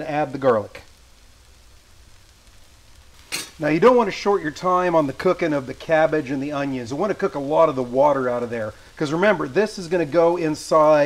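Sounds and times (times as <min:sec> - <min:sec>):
vegetables sizzling in a skillet: 0:00.0 - 0:11.0.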